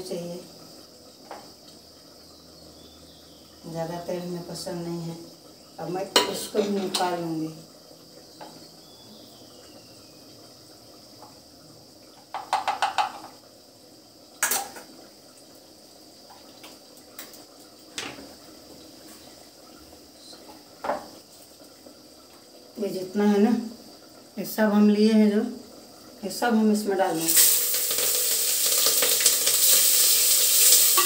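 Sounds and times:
faint steady hiss: 0.0 - 31.0
ladle rattling against a pot: 27.2 - 31.0.

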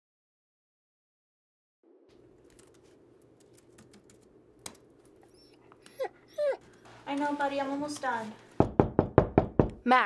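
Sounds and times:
laptop keyboard typing: 2.4 - 4.8
dog whining: 5.2 - 6.9.

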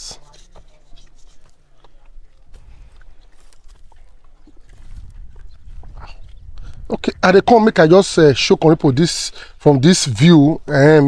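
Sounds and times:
wind rumble on microphone: 3.8 - 7.6
man speaking: 6.9 - 11.0.

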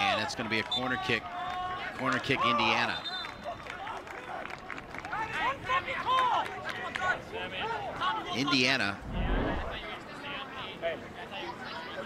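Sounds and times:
crowd noise: 5.2 - 12.0.

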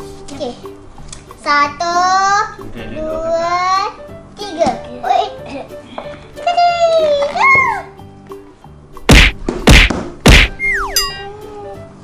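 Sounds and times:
light background music: 0.0 - 12.0
cartoon whacks: 9.1 - 11.0
wavering whistle-like tone: 10.5 - 11.4
falling slide-whistle glide: 10.6 - 11.1.

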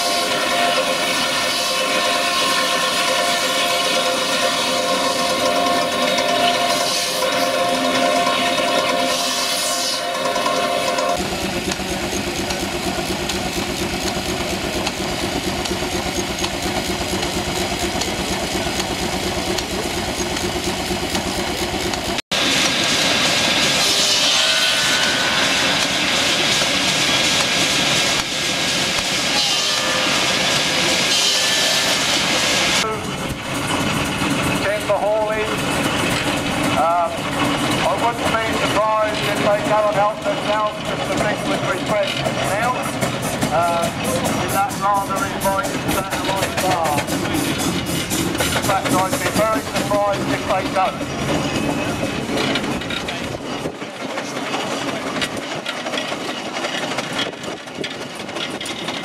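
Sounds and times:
steam engine driving circular saw: 0.0 - 59.0
voices talking: 48.6 - 52.3.

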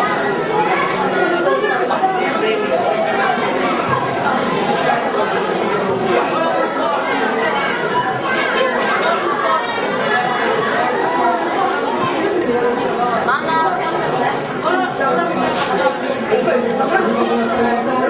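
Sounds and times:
boys chattering: 0.0 - 18.0.

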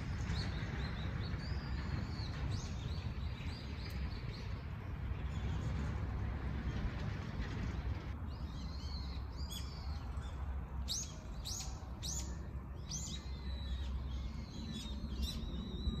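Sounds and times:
steady low rumble: 0.0 - 16.0
birds chirping: 7.7 - 16.0.

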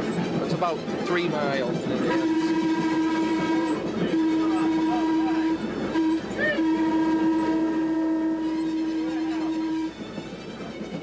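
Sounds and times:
electric trolley car whining: 0.0 - 11.0.

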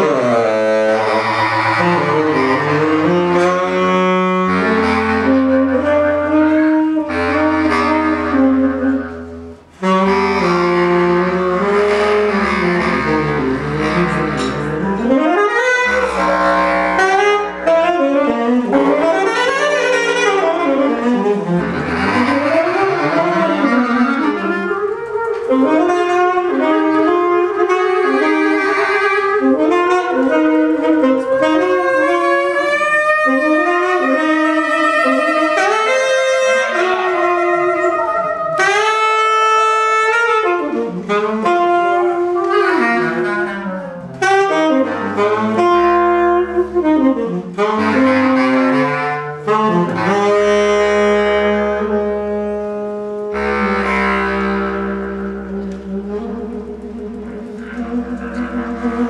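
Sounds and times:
bass clarinet: 0.0 - 59.0
saxophone: 0.0 - 59.0.

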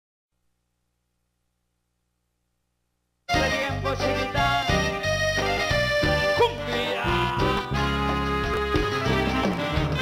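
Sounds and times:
latin tropical band music: 3.3 - 10.0.

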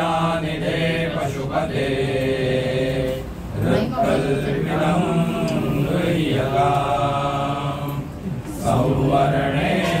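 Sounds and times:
men chanting a hymn: 0.0 - 10.0.

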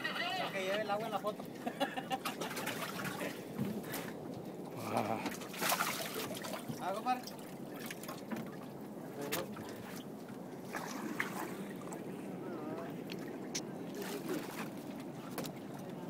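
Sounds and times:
water lapping around boat: 0.0 - 16.0.

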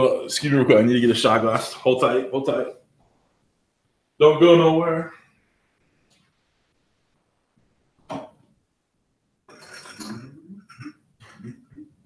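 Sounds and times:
glassware clinking and clattering: 9.5 - 10.9.

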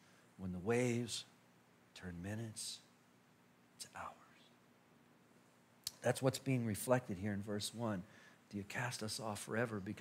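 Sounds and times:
man speaking softly: 1.9 - 2.9, 3.8 - 4.6, 5.9 - 10.0.

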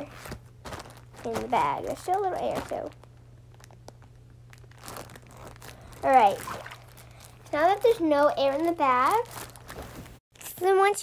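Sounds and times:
plastic bag crinkling: 0.0 - 10.5.

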